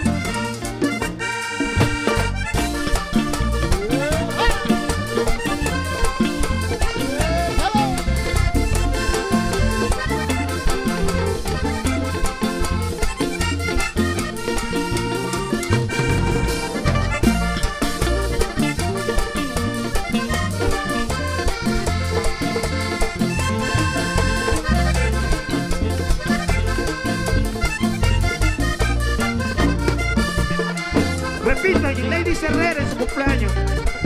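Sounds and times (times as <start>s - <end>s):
bass beat: 0.0s - 34.0s
button accordion: 0.0s - 34.0s
drums: 0.0s - 34.0s.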